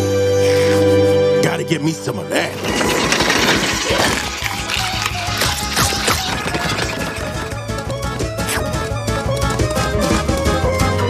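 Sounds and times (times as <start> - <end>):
background music: 0.0 - 11.0
cartoon scuffle clatters: 2.5 - 8.7.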